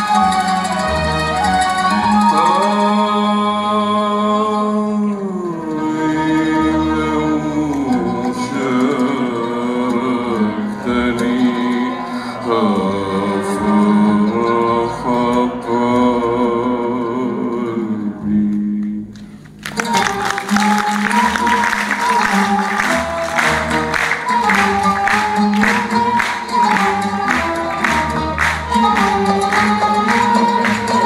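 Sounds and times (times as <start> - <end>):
orchestra playing melodic lines: 0.0 - 4.4, 19.6 - 31.0
man singing wavering vocal line: 2.2 - 19.1.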